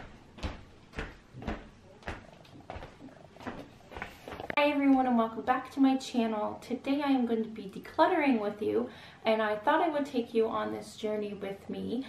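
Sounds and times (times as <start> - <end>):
soft knocks and bumps: 0.0 - 4.6.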